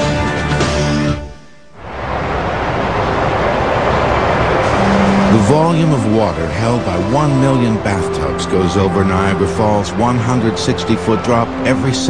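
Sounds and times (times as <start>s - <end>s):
waterfall rushing: 1.8s - 6.2s.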